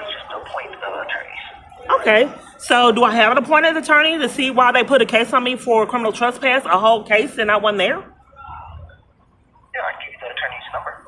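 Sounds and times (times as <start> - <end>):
voice through phone speaker: 9.8 - 11.0.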